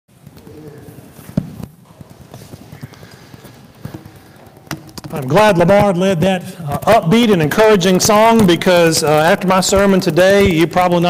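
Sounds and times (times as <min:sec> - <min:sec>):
knocks and shuffling: 0:00.1 - 0:11.0
faint murmured voices: 0:00.2 - 0:04.6.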